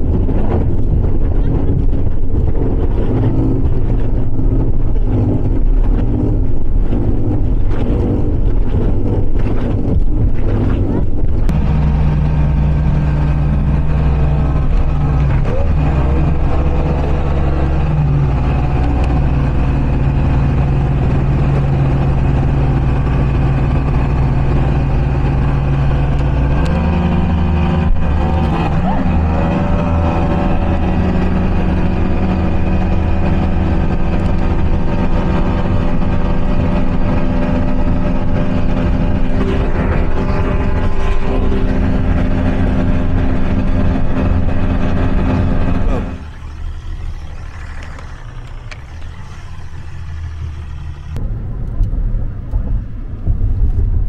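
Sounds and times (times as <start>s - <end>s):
speedboat engine running: 0.0s - 51.6s
constant rushing noise: 0.0s - 54.0s.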